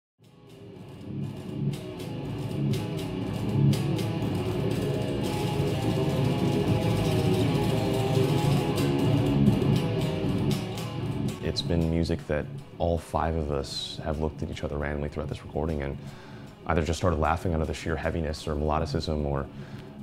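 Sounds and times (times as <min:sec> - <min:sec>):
electric guitar playing: 0:00.2 - 0:20.0.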